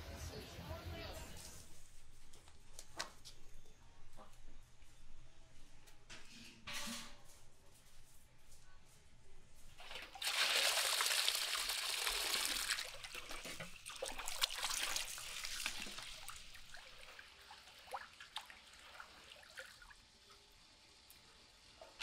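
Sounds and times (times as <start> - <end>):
water sloshing: 9.8 - 19.9
water splashing into a basin: 9.8 - 20.4
water dripping and trickling: 9.8 - 22.0.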